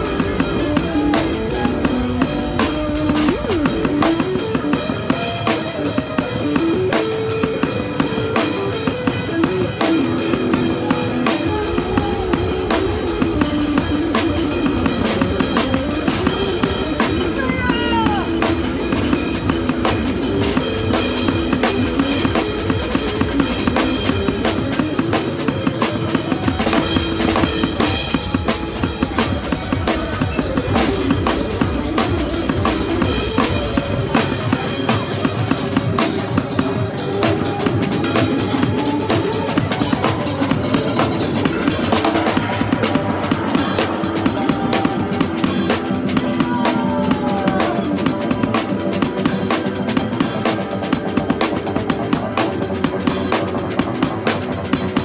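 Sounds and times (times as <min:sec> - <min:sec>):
electric guitar melody: 0:00.0 - 0:55.0
rock drum beat: 0:00.0 - 0:55.0.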